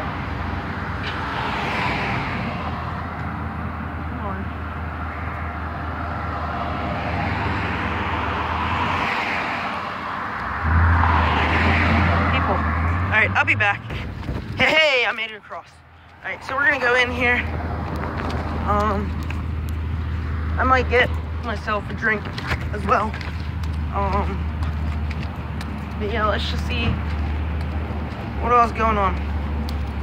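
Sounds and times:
cars driving past: 0.0 - 30.0
loud low rumble: 10.6 - 14.6.

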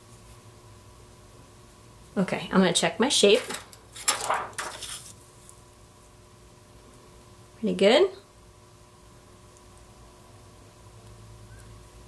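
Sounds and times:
plastic sheet rustling: 3.2 - 5.3.

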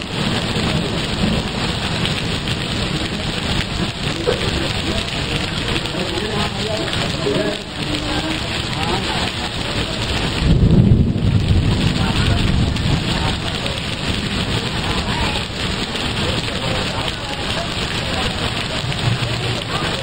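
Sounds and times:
heavy rain falling: 0.0 - 20.0
low rumble: 10.2 - 16.3.

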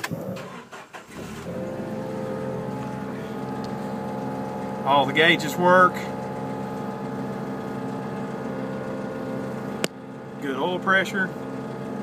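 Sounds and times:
car engine starting and idling: 0.0 - 12.0.

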